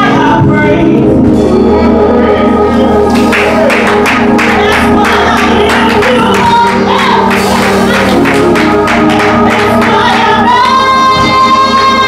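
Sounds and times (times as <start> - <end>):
woman singing gospel lead: 0.0 - 1.3, 4.4 - 12.0
backing singers: 1.8 - 12.0.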